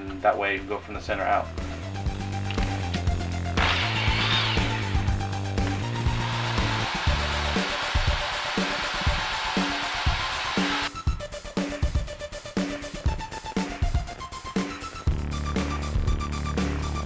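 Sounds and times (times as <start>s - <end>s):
background music with beat: 0.0s - 17.0s
electric drill boring plastic: 3.6s - 10.9s.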